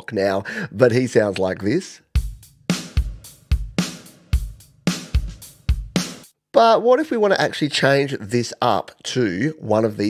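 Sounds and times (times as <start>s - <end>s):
kick and snare drum beat: 2.2s - 6.3s.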